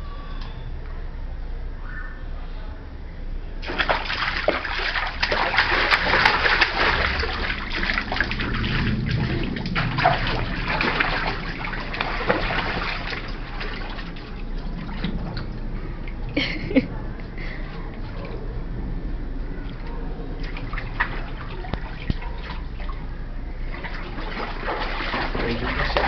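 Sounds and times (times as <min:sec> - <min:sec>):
water splashing in paddling pool: 0:03.6 - 0:16.4, 0:19.5 - 0:26.0.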